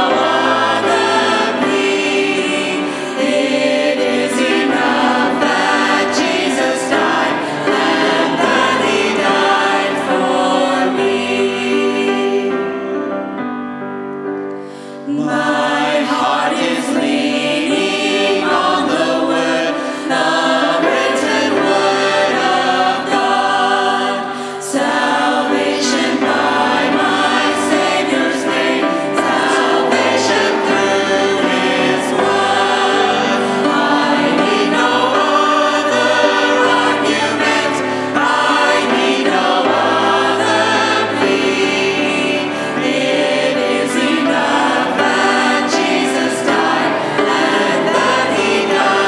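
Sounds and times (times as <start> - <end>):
vocal group singing a hymn: 0.0 - 13.2, 14.6 - 49.0
grand piano: 0.0 - 49.0.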